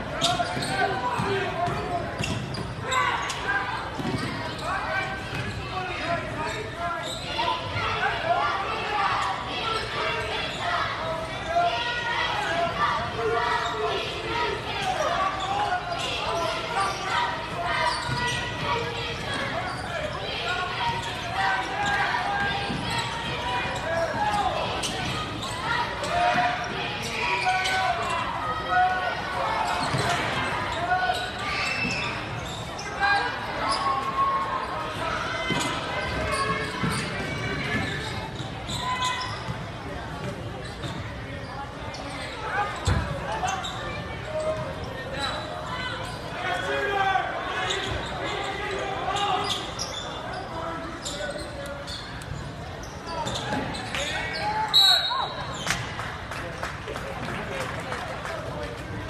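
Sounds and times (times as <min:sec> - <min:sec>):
crowd and player voices: 0:00.0 - 0:59.0.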